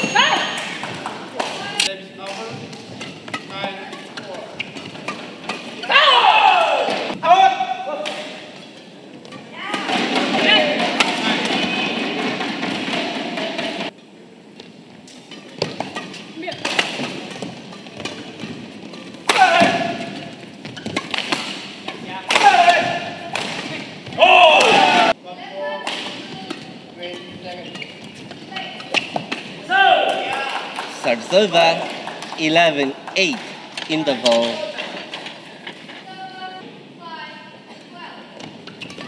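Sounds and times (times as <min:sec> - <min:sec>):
rackets hitting shuttlecock: 0:00.0 - 0:07.2, 0:08.0 - 0:13.9, 0:14.6 - 0:25.2, 0:25.8 - 0:35.8
noisy crowd: 0:00.0 - 0:14.6, 0:21.5 - 0:38.6
loud shouts: 0:05.8 - 0:07.9, 0:19.3 - 0:20.0, 0:22.3 - 0:23.1, 0:24.2 - 0:25.2, 0:29.6 - 0:30.7.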